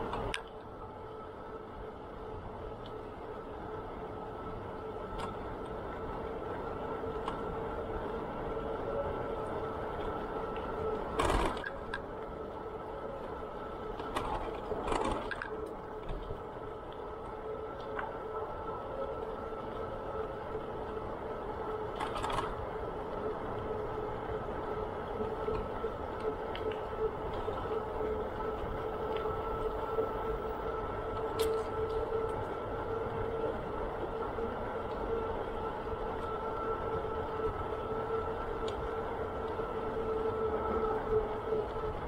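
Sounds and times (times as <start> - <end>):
bicycle rattles and bumps: 0.0 - 42.0
bicycle whirring on pavement: 0.0 - 42.0.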